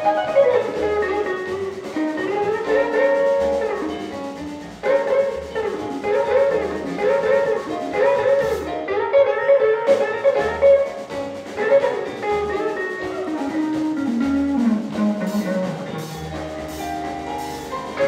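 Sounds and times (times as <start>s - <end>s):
electric blues guitar solo: 0.0s - 4.1s, 4.7s - 16.6s
drums: 0.0s - 18.0s.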